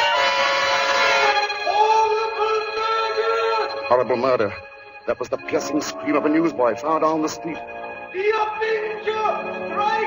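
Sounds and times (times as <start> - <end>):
dramatic music cue: 0.1 - 10.0.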